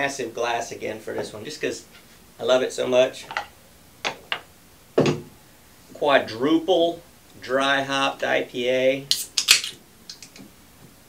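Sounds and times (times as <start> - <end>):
dull knock: 5.0 - 5.3.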